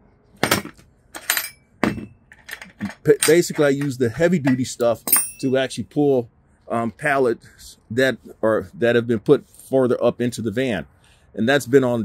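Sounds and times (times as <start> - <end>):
metal hooks clinking on rail: 0.4 - 5.6.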